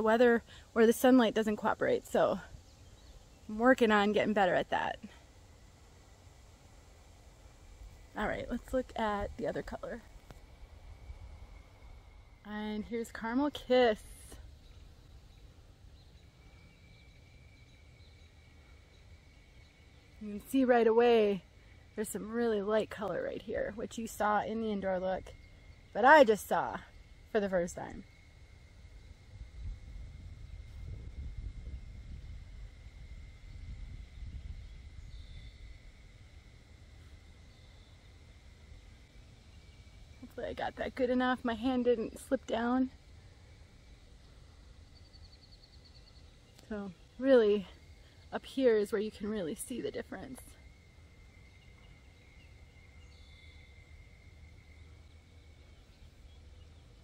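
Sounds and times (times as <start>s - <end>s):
wind rumble on microphone: 7.6s - 15.0s, 26.8s - 37.6s.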